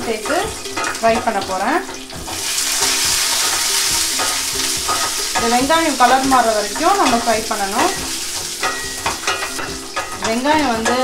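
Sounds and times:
food sizzling in hot oil: 0:00.0 - 0:11.0
wooden spatula stirring: 0:00.0 - 0:11.0.

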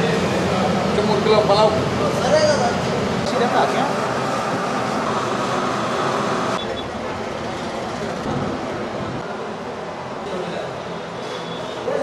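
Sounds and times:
road traffic rumble and hiss: 0:00.0 - 0:12.0.

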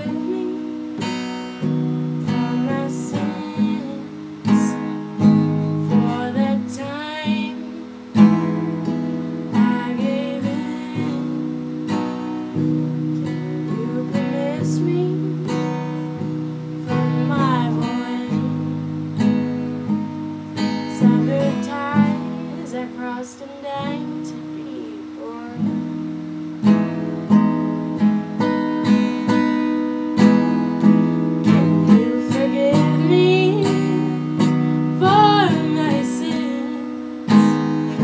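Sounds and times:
acoustic guitar playing chords: 0:00.0 - 0:38.0.

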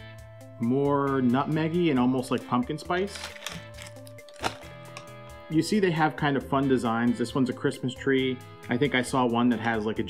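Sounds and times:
plastic wrapper crinkling: 0:03.0 - 0:05.1.

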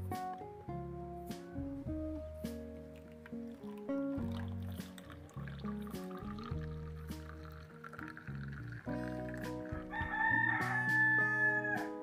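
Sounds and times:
guitar music: 0:00.0 - 0:12.0
rooster crowing: 0:09.8 - 0:12.0.

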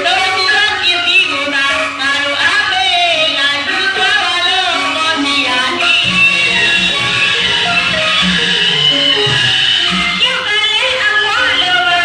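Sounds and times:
music with high singing voice: 0:00.0 - 0:12.0.

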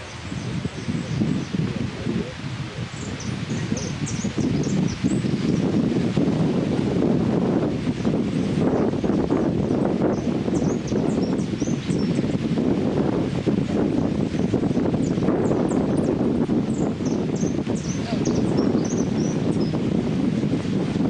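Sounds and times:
wind and rustling: 0:00.0 - 0:21.0
bird twittering: 0:02.9 - 0:05.2.

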